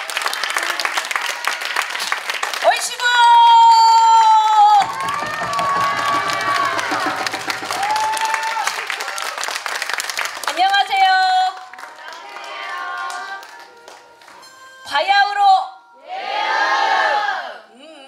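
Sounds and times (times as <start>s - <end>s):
people clapping: 0.0s - 14.6s
music: 0.1s - 3.9s, 4.7s - 18.0s.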